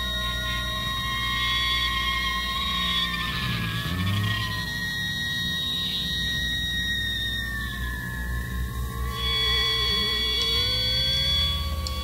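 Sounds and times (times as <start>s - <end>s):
electric guitar feedback: 0.0s - 12.0s.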